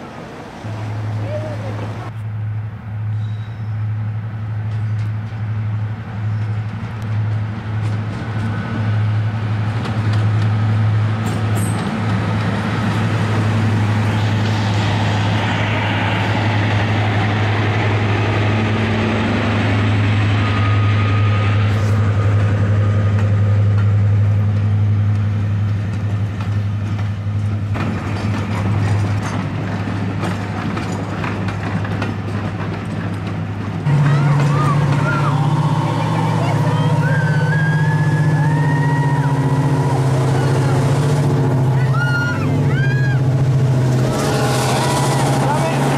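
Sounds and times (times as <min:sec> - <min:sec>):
higher engine drone: 0:00.0 - 0:26.6, 0:33.8 - 0:45.9
diesel locomotive engine drone: 0:00.0 - 0:45.9.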